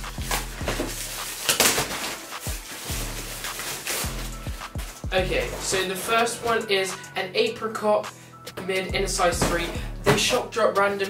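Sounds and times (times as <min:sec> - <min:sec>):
plastic bag tearing and rustling: 0:00.0 - 0:06.5
background music with bass beat: 0:00.0 - 0:07.2, 0:08.0 - 0:10.6.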